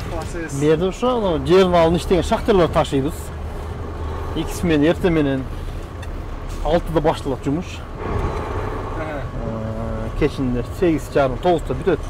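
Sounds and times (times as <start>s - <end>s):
truck engine rumble from cab: 0.0s - 12.0s.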